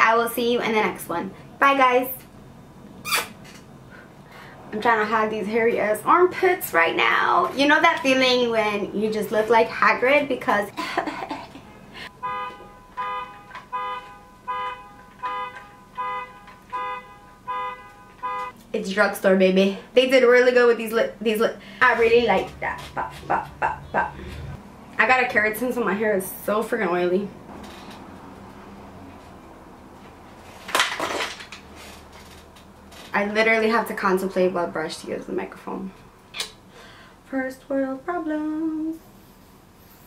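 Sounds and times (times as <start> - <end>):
faint room hum: 0.0 - 40.0
car alarm horn blasts: 12.1 - 18.6.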